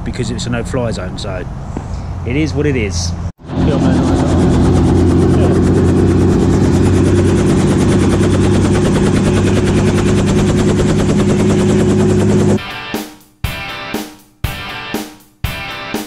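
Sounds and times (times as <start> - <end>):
helicopter engine drone: 3.4 - 12.6
rotor blades beating: 3.4 - 12.6.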